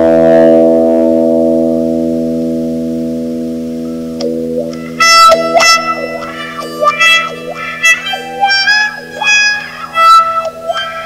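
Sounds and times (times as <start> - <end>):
bowed electric guitar: 0.0 - 11.0.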